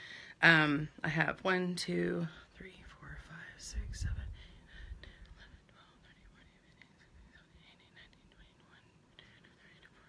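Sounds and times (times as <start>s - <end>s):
woman whispering: 1.8s - 10.0s.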